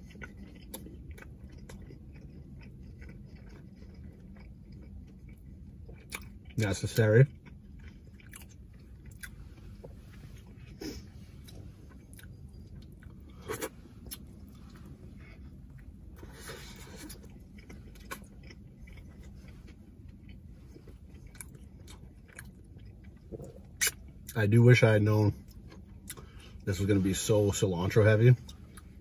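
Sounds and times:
person chewing: 0.0 - 24.4, 25.3 - 26.6
low steady hum: 0.0 - 29.0.

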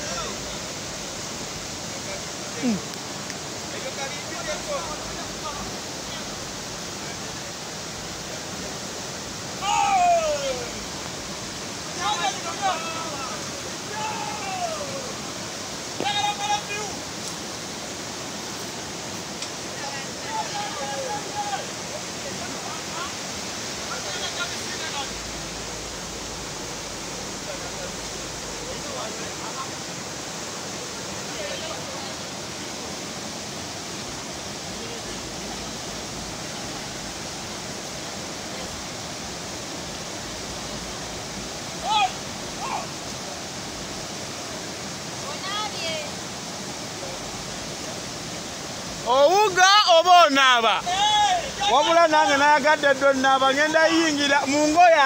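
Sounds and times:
river rapids rushing over rocks: 0.0 - 55.0
person shouting: 9.6 - 10.8, 13.9 - 15.1, 41.8 - 42.9, 49.1 - 52.0.

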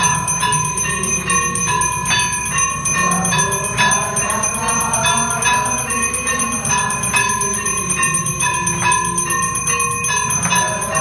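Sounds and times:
temple bell ringing: 0.0 - 11.0.

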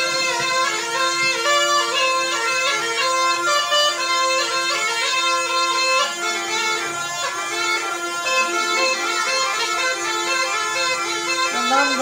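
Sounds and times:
reed pipe melody over drone: 0.0 - 12.0.

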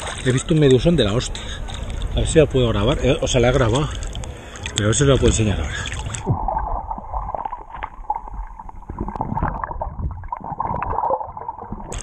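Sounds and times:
underwater sloshing and gurgling: 0.0 - 12.0.

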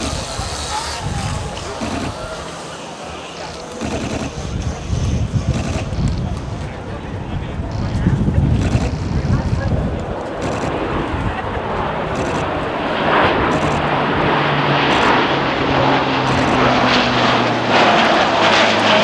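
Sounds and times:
aircraft engines roaring: 0.0 - 19.0
low propeller hum: 0.0 - 19.0.

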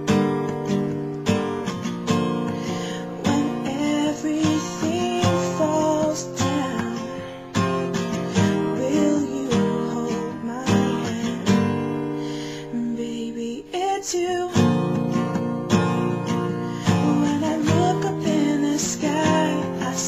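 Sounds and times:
acoustic guitar strumming: 0.0 - 20.0.

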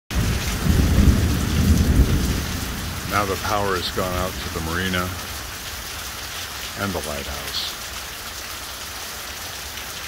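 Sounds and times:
low rumble of thunder: 0.1 - 5.6
heavy rain: 0.1 - 10.0.

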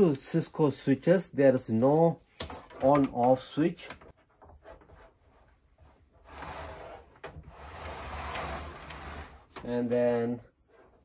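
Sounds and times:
metal box scraping on wood: 6.2 - 11.0.

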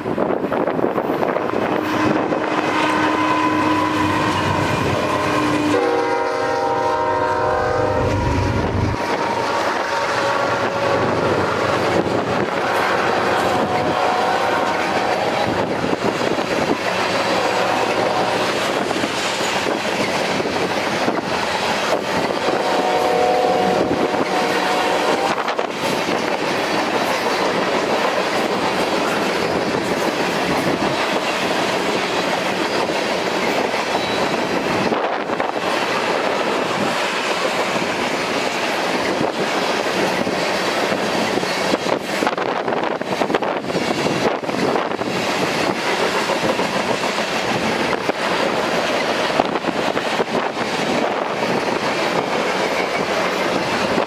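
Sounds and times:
diesel locomotive engines: 0.0 - 54.0
locomotive horn: 1.5 - 11.7, 12.3 - 15.7, 17.0 - 18.8, 22.3 - 25.6
train wheels clacking on rails: 8.0 - 54.0.

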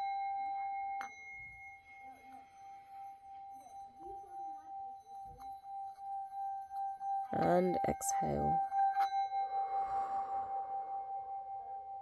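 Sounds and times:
singing bowl ringing: 0.0 - 12.0.

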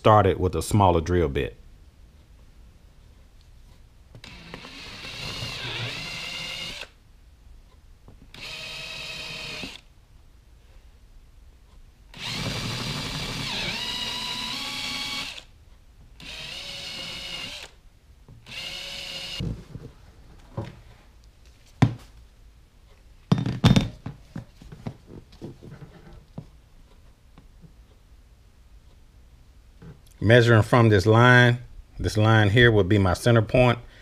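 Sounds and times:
cordless drill running: 4.2 - 7.0, 8.3 - 9.8, 12.1 - 15.5, 16.2 - 17.8, 18.4 - 19.4.

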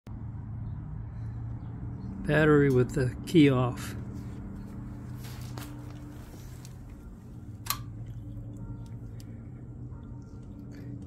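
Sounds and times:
low hum: 0.1 - 11.0.

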